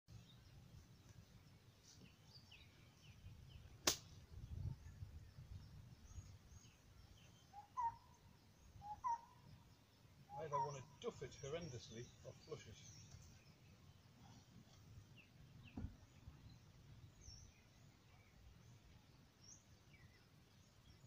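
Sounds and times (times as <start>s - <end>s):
faint bird chirps: 0.1s - 21.0s
sharp click: 3.8s - 4.1s.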